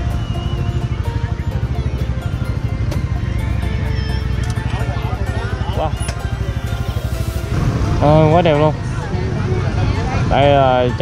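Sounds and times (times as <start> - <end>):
steady low rumble: 0.0 - 10.4
music: 0.0 - 11.0
faint voices: 4.2 - 11.0.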